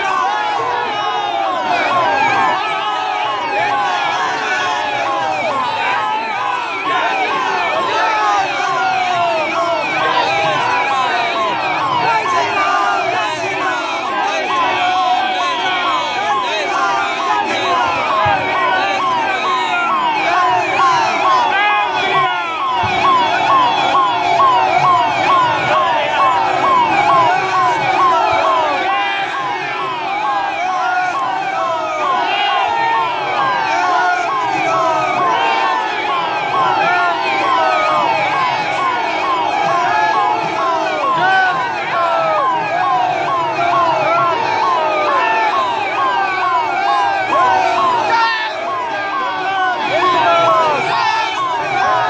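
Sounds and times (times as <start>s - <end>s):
electronic vehicle sirens: 0.0s - 52.0s.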